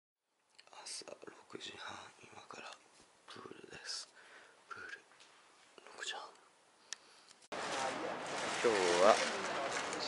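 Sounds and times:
man whispering: 0.6 - 5.1, 5.8 - 6.5.

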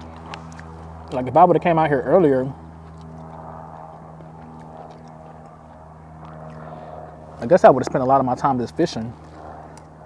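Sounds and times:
steady engine drone: 0.0 - 10.0.

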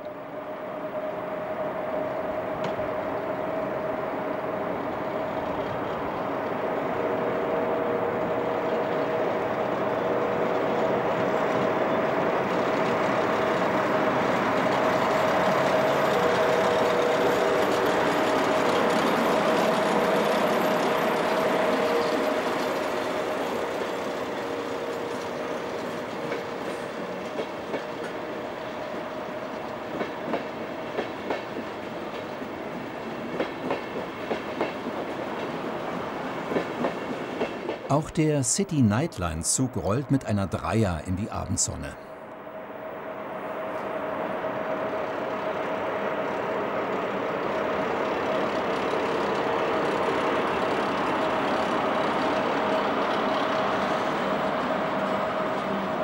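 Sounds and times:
electric locomotive whine: 0.0 - 37.9, 42.1 - 56.0
train wheels clacking: 33.3 - 35.6.

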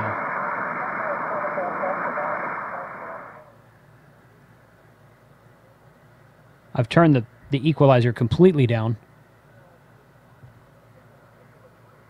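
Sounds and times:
radio static: 0.0 - 3.5
weak voice over radio: 0.0 - 3.5
faint hiss: 0.0 - 7.3.

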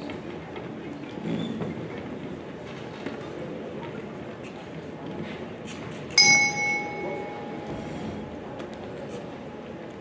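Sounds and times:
boxing ring bell ringing: 6.2 - 8.2.

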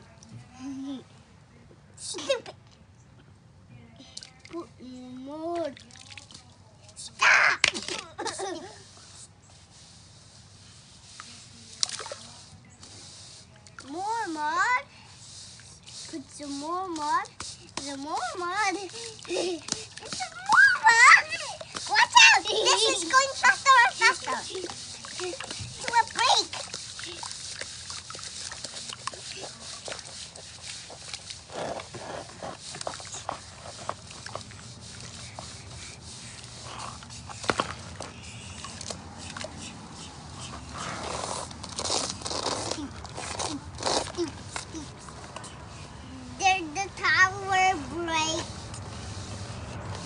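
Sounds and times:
children laughing and talking: 2.0 - 2.7, 7.2 - 9.2, 16.9 - 27.4, 42.6 - 48.6
water sloshing: 5.5 - 7.0, 9.9 - 46.0
hands squelching wet mud: 15.2 - 46.0.

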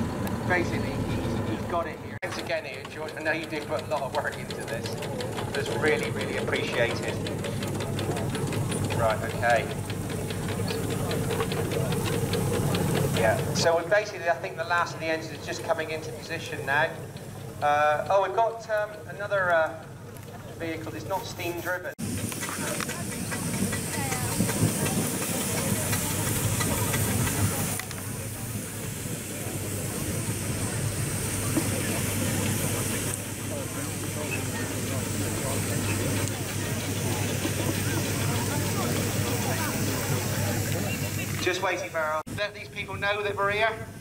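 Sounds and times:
people chattering: 0.0 - 43.6
steam hissing: 2.2 - 18.5, 20.6 - 44.0.

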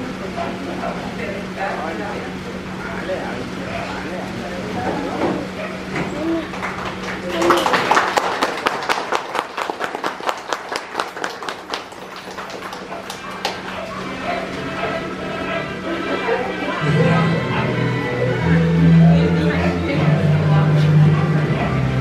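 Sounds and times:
small crowd applauding: 6.0 - 17.2.

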